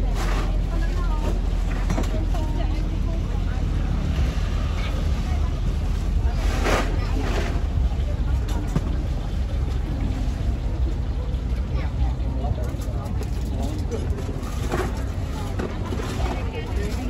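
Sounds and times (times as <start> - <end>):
crowd chatter: 0.0 - 17.0
steady low rumble: 0.0 - 17.0.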